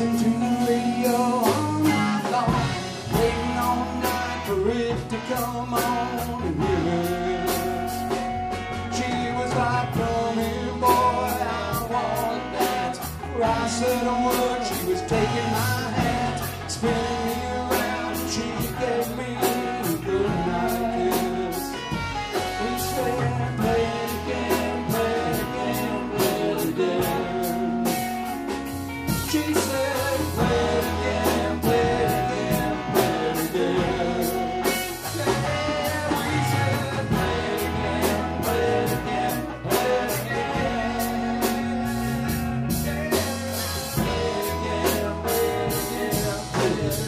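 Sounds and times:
bass guitar: 0.0s - 47.0s
drum kit beat: 0.0s - 47.0s
electric guitars: 0.0s - 47.0s.

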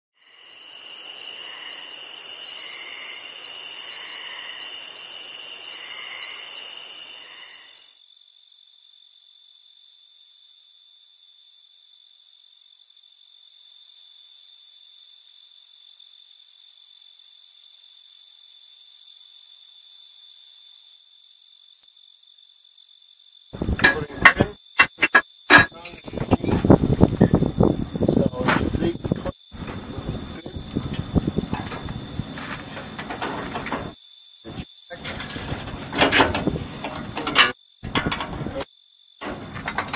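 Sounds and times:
higher insect buzz: 0.2s - 7.8s, 26.6s - 32.8s
insect trill: 0.2s - 9.3s, 16.4s - 39.9s.

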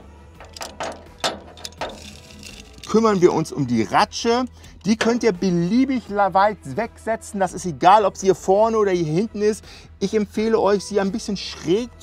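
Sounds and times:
ratchet buckle clicking: 0.4s - 3.0s.

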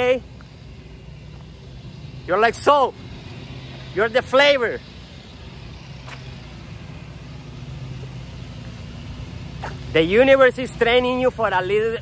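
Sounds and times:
vehicle engine hum with tyre noise: 0.0s - 12.0s.

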